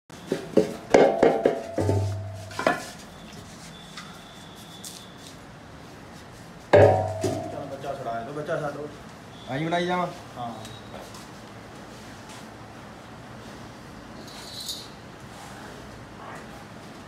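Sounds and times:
metal milk can clanking: 1.0s - 2.8s, 6.8s - 7.6s.

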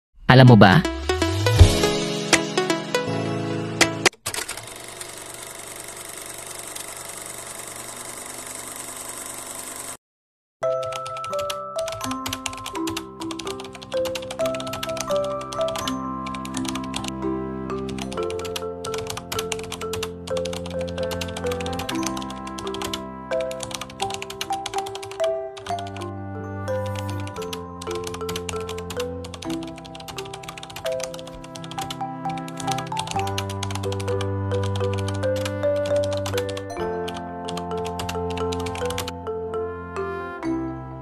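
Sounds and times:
keyboard typing clicks: 17.9s - 26.0s, 26.8s - 39.2s.

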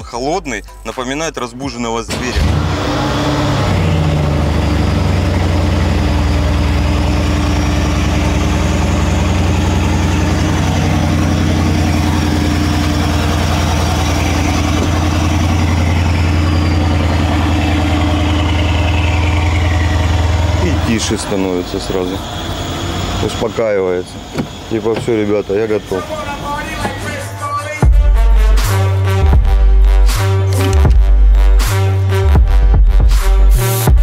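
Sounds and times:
car engine idling: 0.0s - 28.4s.

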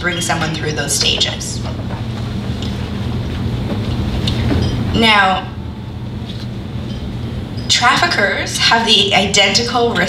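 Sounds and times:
low hum and rumble: 0.0s - 10.0s.

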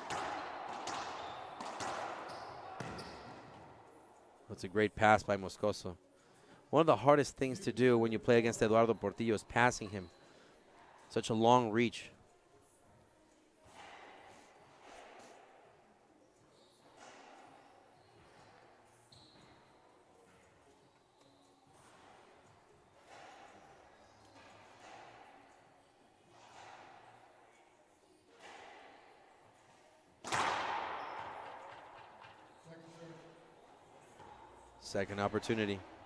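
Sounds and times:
ball bouncing on wooden floor: 0.0s - 3.6s
loud crack of ball struck: 30.2s - 31.8s.

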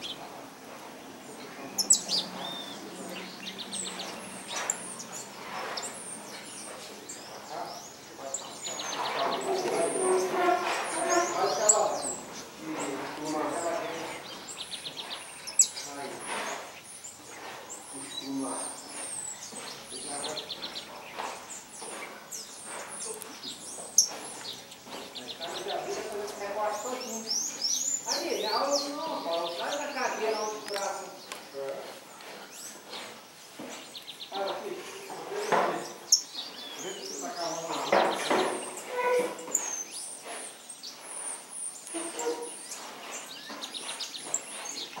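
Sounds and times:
finches chirping: 0.0s - 45.0s.

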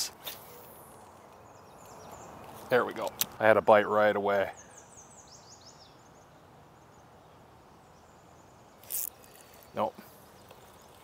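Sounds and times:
small bird chirping: 0.4s - 3.4s, 4.5s - 11.0s.

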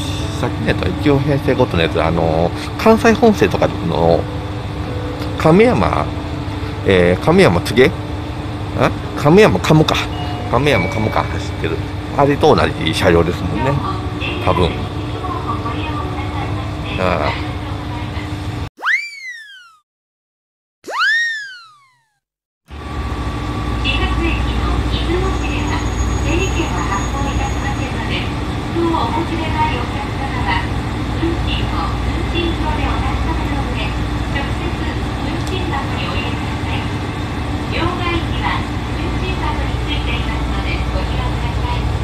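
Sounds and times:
train carriage rumble and hum: 0.0s - 18.7s, 22.7s - 42.0s
cartoon boing sound effects: 18.8s - 19.8s, 20.8s - 22.2s.

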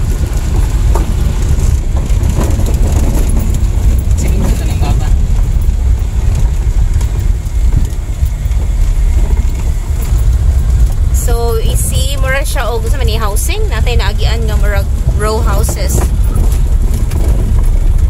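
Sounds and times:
vehicle rumbling on dirt road: 0.0s - 18.0s
person talking: 11.2s - 16.1s.

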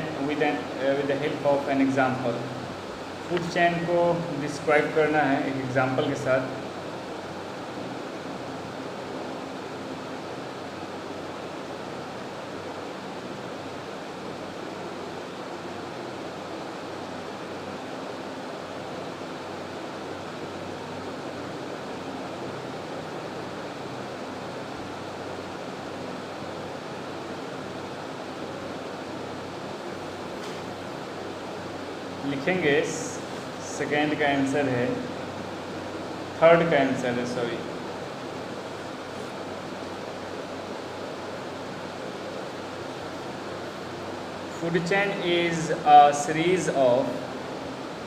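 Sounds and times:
steady background hiss: 0.0s - 48.0s.

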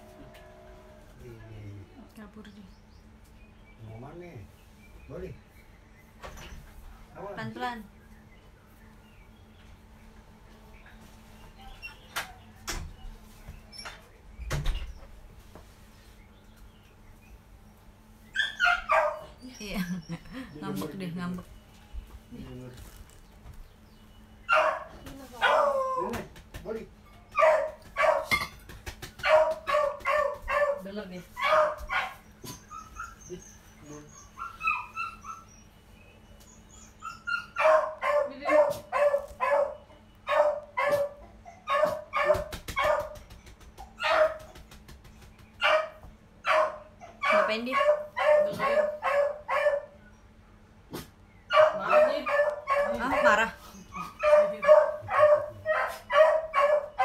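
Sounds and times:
dog barking: 18.4s - 19.4s, 24.5s - 25.9s, 27.4s - 28.5s, 29.2s - 33.1s, 37.4s - 43.2s, 44.0s - 44.5s, 45.6s - 50.0s, 51.5s - 57.0s
dog whining: 31.5s - 35.8s, 36.5s - 39.8s.

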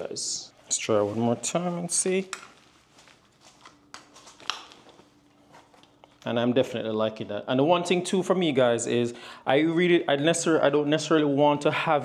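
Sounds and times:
belt rustling: 2.3s - 6.2s.

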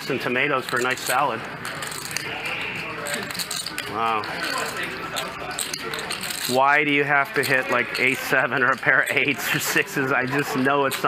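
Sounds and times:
murmur of voices: 0.0s - 11.0s
poker chips clicking: 0.6s - 11.0s.

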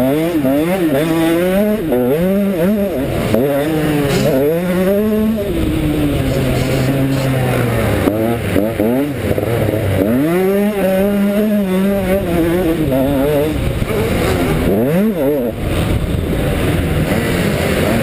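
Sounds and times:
motocross engine revving: 0.0s - 18.0s.

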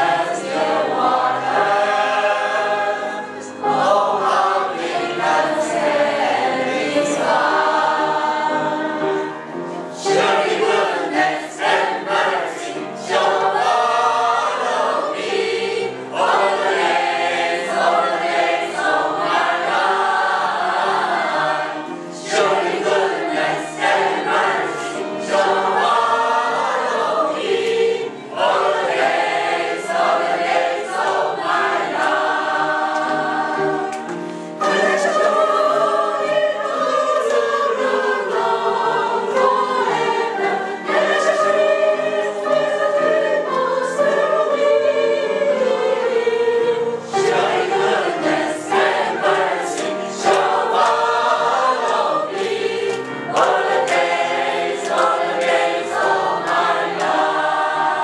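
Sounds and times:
group singing a hymn: 0.0s - 58.0s.

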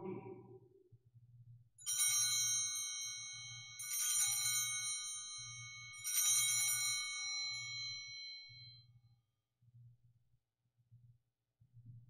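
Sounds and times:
altar bells ringing: 1.9s - 8.7s.

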